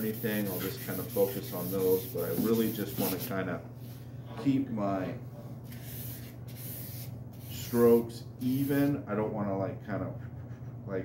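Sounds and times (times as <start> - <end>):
sandpaper rubbing on steel blade: 0.0 - 3.3, 5.7 - 7.9.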